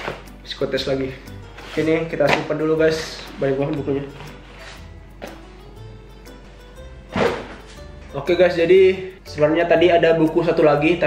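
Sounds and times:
soft background music: 0.0 - 11.0
books thudding: 1.6 - 2.6, 7.1 - 7.8.

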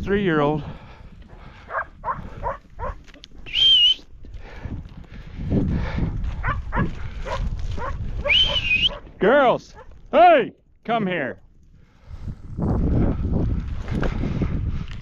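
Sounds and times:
dog barking: 1.7 - 3.0, 6.4 - 9.0
person whistling: 3.5 - 4.1, 8.2 - 9.0.

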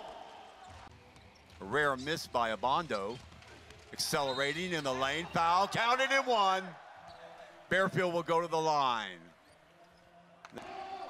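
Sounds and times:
arena hall background: 0.0 - 11.0.

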